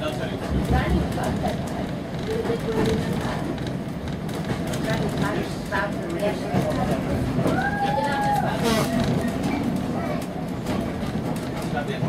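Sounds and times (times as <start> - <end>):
passengers' voices: 0.0 - 12.0
railway carriage rumble: 0.0 - 12.0.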